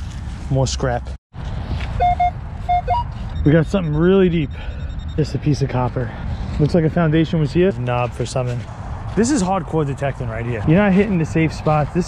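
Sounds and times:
metal detector beeps: 2.0s - 5.9s.

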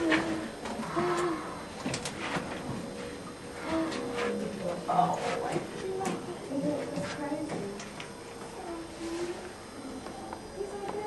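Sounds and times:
person humming low: 0.0s - 1.7s, 3.6s - 4.7s.

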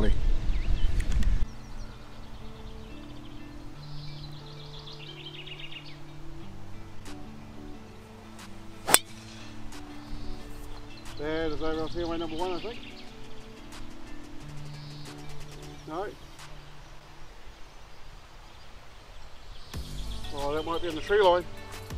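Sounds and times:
birds chirping: 0.0s - 21.9s
slow background music: 0.2s - 21.9s
golf club striking ball: 8.4s - 10.8s.

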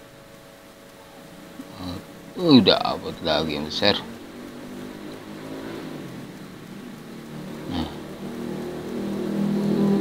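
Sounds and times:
engine humming: 0.0s - 10.0s.

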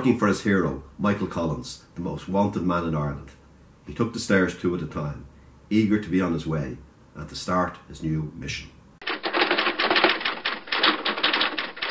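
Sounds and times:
typewriter keys clattering: 9.0s - 11.9s.

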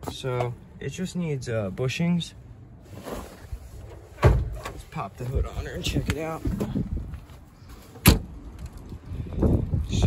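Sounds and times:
car door shutting: 4.2s - 4.8s, 8.0s - 8.3s.

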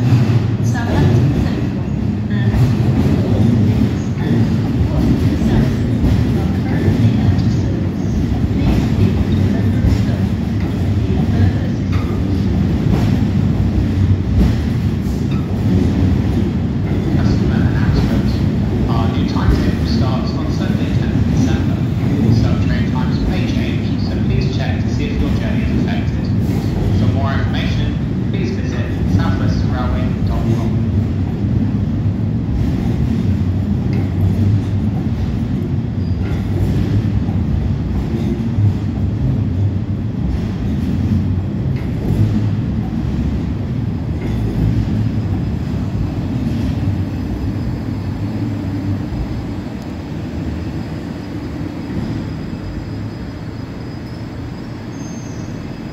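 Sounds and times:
train wheels rumbling: 0.0s - 55.9s.

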